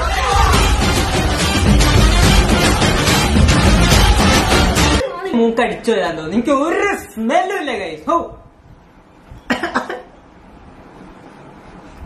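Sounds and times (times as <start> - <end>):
person coughing: 9.5 - 10.1.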